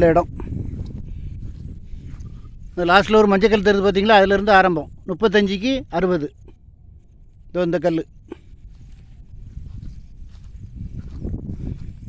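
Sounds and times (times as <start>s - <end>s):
microphone rumbling and thudding: 0.0s - 12.0s
footsteps through grass: 0.8s - 2.9s, 8.4s - 12.0s.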